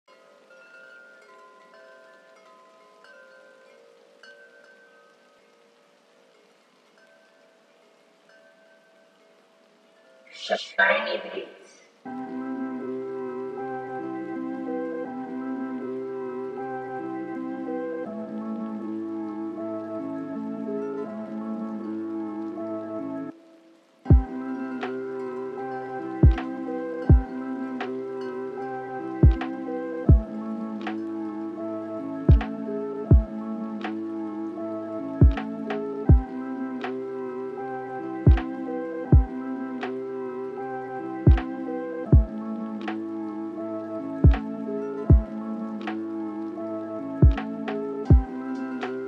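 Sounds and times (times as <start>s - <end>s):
soft chime tones ringing: 0.1s - 10.5s
lofi hip-hop beat: 24.1s - 25.1s, 26.2s - 28.0s, 29.2s - 31.2s, 32.3s - 34.2s, 35.2s - 37.0s, 38.3s - 40.0s, 41.3s - 43.1s, 43.7s - 49.0s.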